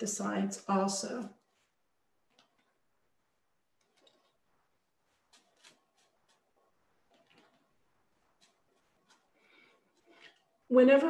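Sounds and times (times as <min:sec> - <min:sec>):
paintbrush ticks and scrapes: 0:01.3 - 0:10.8.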